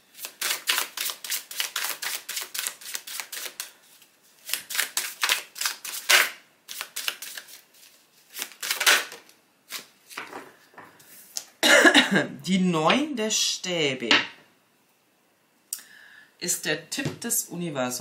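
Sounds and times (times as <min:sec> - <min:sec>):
cards being shuffled: 0:00.1 - 0:10.4
woman speaking: 0:16.4 - 0:18.0.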